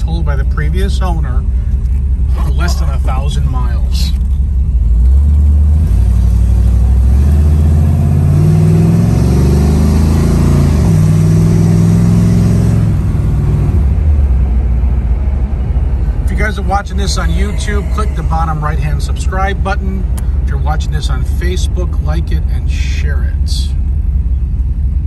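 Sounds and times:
car engine accelerating: 0.0 - 25.0.

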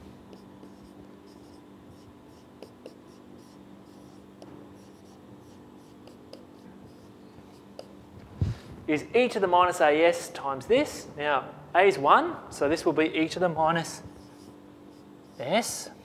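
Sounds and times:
low steady hum: 0.0 - 16.0
marker writing on whiteboard: 0.3 - 8.0, 13.9 - 16.0.

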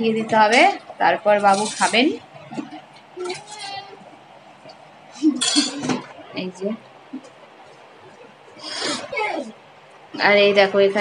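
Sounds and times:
dishes and utensils clinking: 1.4 - 3.9, 5.2 - 6.2.

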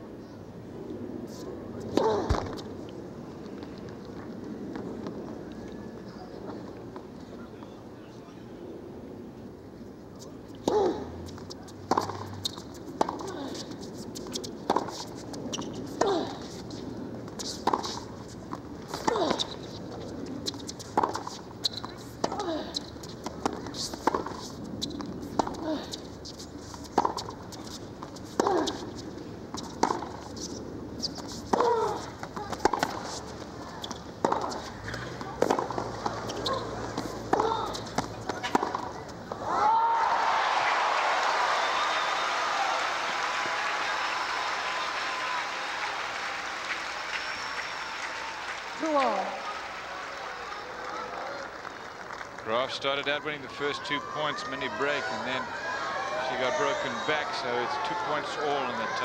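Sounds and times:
tennis ball bounces: 10.6 - 39.4
crowd murmur: 31.6 - 39.6, 53.2 - 59.0
applause: 40.1 - 52.7.

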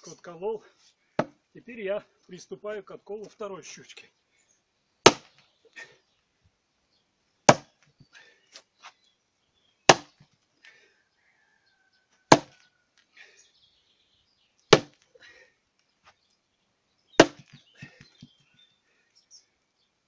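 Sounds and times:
maul striking a log: 1.2 - 1.4, 5.0 - 5.4, 7.5 - 7.8, 9.9 - 10.2, 12.3 - 12.6, 14.7 - 15.0, 17.2 - 18.0.

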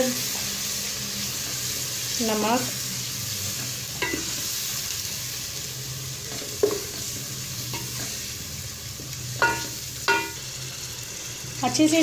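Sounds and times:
sauce sizzling in hot oil: 0.0 - 12.0
wooden spatula knocking on pot: 6.6 - 6.9.

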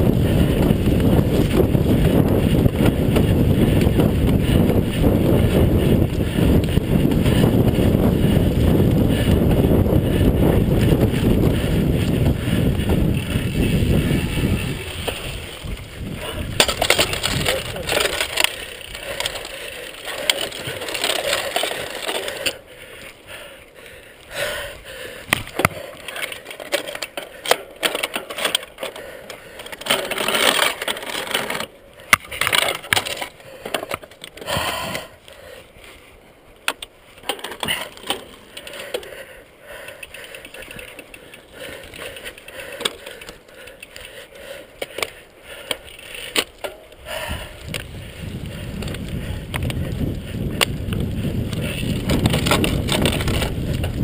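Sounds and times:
wind buffeting microphone: 0.0 - 22.4, 46.9 - 54.0
bike rattling and knocking: 0.0 - 22.7, 25.3 - 35.1, 36.6 - 54.0.

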